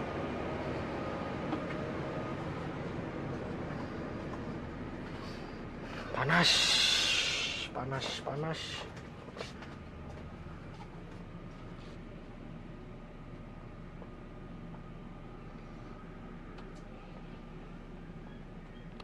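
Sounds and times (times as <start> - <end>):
bus engine idling: 0.0 - 19.0
faint high whine: 11.4 - 19.0.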